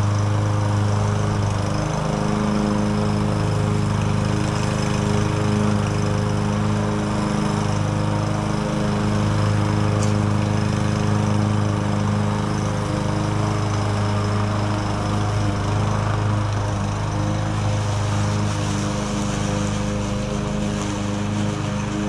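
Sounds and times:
push mower engine cutting grass: 0:00.0 - 0:22.0.

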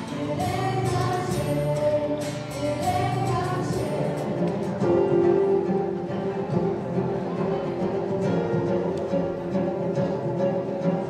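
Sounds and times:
girl singing: 0:00.0 - 0:05.3
strummed acoustic guitar: 0:00.0 - 0:11.0.

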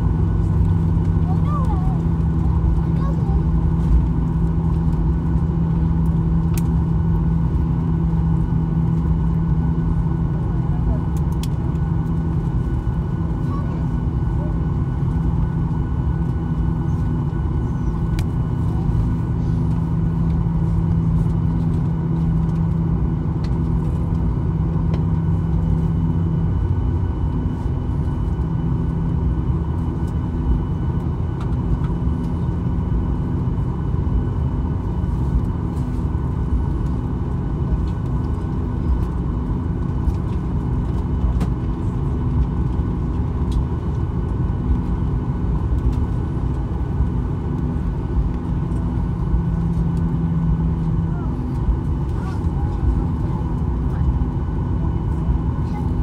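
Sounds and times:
jet engines idling rumble: 0:00.0 - 0:56.0
steady hum: 0:00.0 - 0:56.0.

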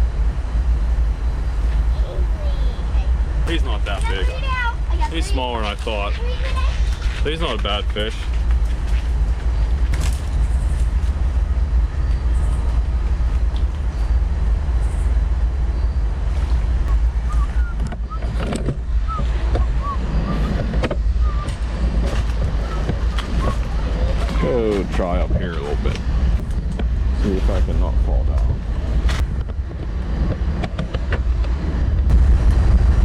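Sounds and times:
wind rumbling on microphone: 0:00.0 - 0:33.0.

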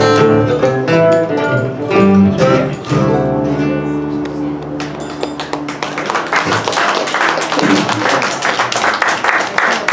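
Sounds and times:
string trio playing: 0:00.0 - 0:06.0
audience voices: 0:03.7 - 0:09.9
audience clapping: 0:04.8 - 0:09.9.

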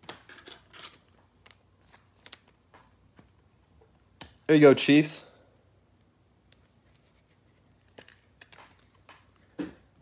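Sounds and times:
trading cards rustling: 0:06.5 - 0:09.5.

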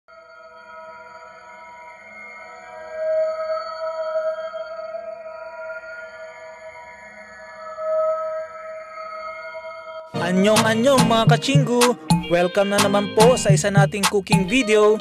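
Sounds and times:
ambient electronic music: 0:00.1 - 0:15.0.

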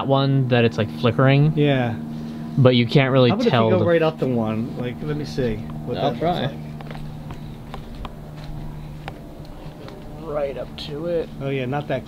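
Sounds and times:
steady low hum: 0:00.0 - 0:12.0
soft footsteps: 0:06.7 - 0:10.8.

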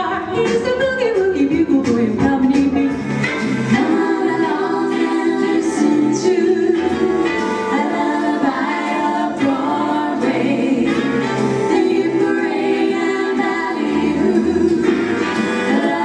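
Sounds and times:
instrumental backing: 0:00.0 - 0:16.0
group singing in harmony: 0:03.4 - 0:16.0.

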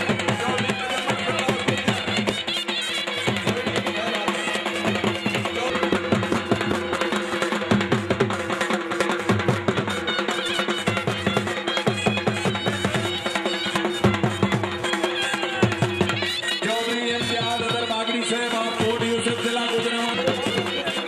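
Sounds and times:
fast steady drumming: 0:00.0 - 0:21.0.

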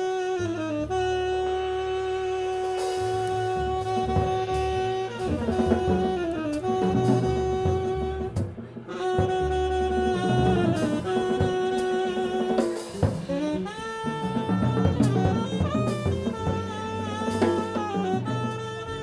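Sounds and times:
saxophone playing held notes: 0:00.0 - 0:19.0
plucked upright bass: 0:00.5 - 0:19.0
drum kit and cymbal hits: 0:02.4 - 0:19.0.

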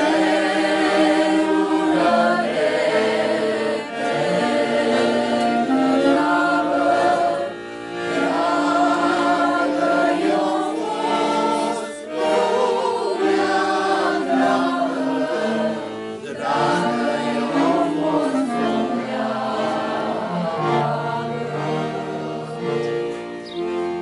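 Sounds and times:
group singing slow song: 0:00.0 - 0:23.0.

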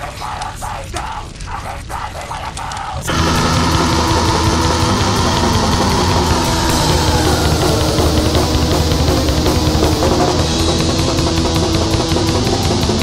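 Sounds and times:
black metal music: 0:03.1 - 0:13.0.

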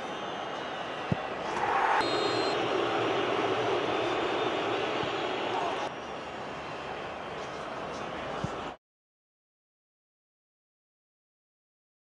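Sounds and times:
stadium crowd cheering: 0:00.0 - 0:08.8
steady crowd noise: 0:00.0 - 0:08.8.

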